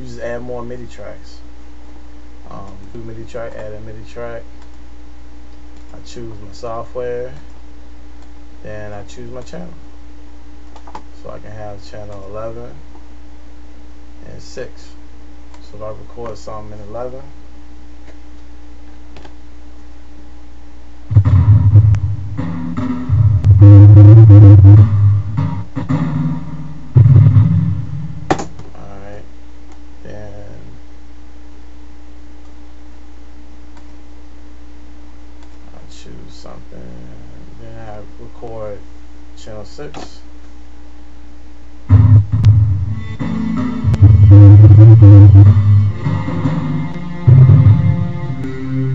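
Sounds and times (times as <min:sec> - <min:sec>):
steady low hum: 0:00.0 - 0:48.9.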